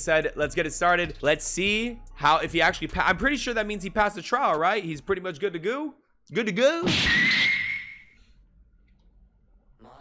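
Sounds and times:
whoosh with whistle-like tone: 7.0s - 8.2s.

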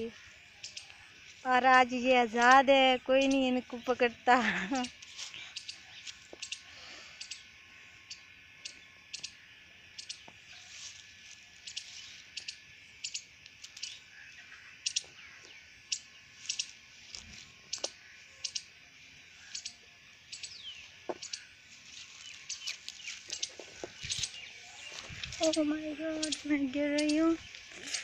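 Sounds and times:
small birds chirping: 0.0s - 28.0s
steady high hiss: 0.0s - 28.0s.

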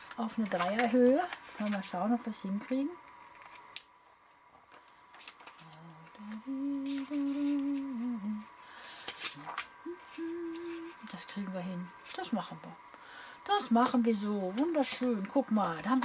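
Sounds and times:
woman humming: 5.6s - 8.6s, 9.4s - 11.3s.

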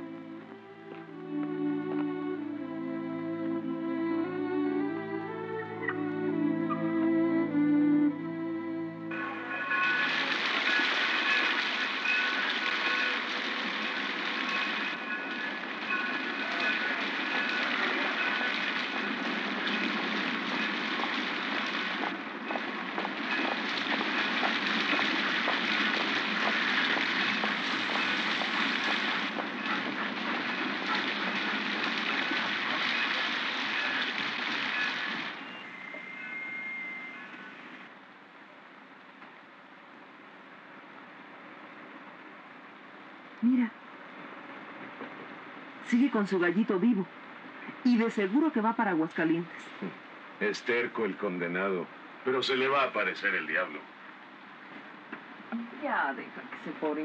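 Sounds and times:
train clattering rumble: 9.1s - 36.2s
high squealing tones: 34.7s - 37.9s.

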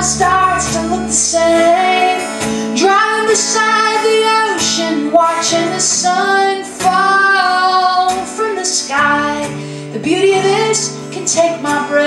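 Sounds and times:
strummed acoustic guitar: 0.0s - 12.0s
woman singing: 0.0s - 12.0s.

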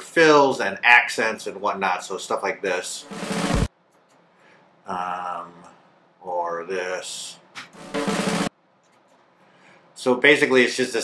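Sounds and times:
short drum fill: 3.1s - 3.7s, 7.8s - 8.5s.

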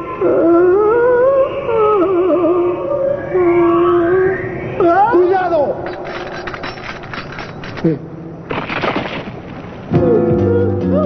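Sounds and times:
crackling clatter of sharp knocks: 5.8s - 9.9s.

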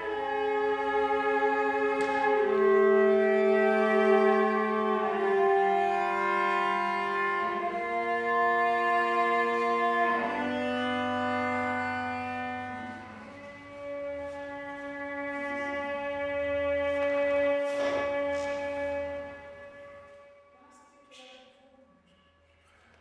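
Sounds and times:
cello chords: 0.0s - 21.0s.

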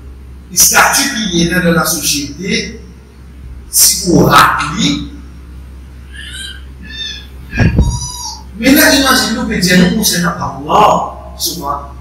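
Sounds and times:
high-pitched animal calls: 6.1s - 8.6s.

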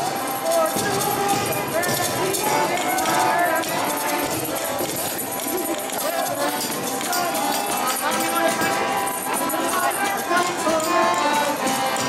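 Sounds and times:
button accordion playing: 0.0s - 12.0s
loud crowd chatter: 0.0s - 12.0s.

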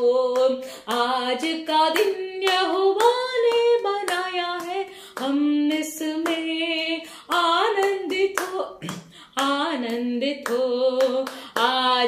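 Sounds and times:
woman singing unaccompanied: 0.0s - 12.0s
hands clapping: 0.3s - 5.4s, 6.0s - 12.0s.

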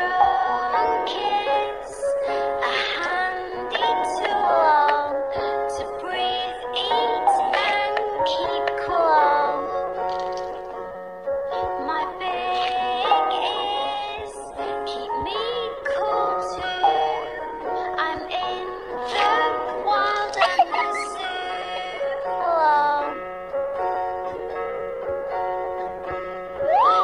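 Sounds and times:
synthetic voice singing: 0.0s - 10.3s, 11.8s - 23.2s
backing music: 0.0s - 27.0s.

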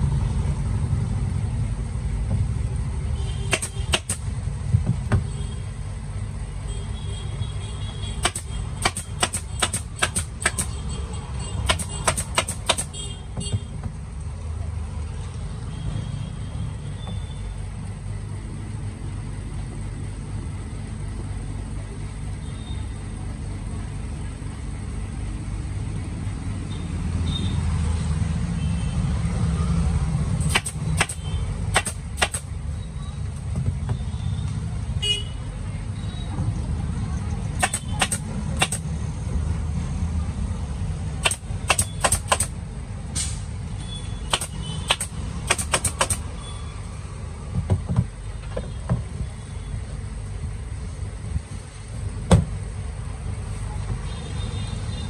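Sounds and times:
pneumatic staple gun firing: 3.5s - 4.3s, 8.2s - 10.8s, 11.6s - 13.0s, 30.4s - 32.5s, 37.6s - 38.9s, 41.2s - 42.6s, 44.3s - 46.3s.

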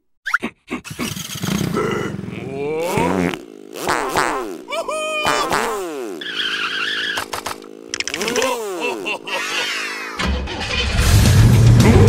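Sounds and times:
cartoon gibberish grunts and squeals: 0.3s - 7.1s, 8.2s - 10.2s.

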